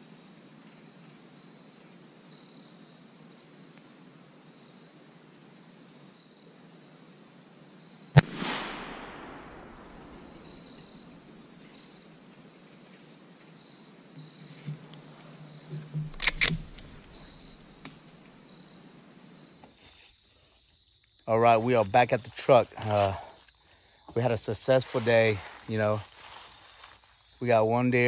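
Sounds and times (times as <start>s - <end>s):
loud rifle shot echoing: 8.2s - 11.4s.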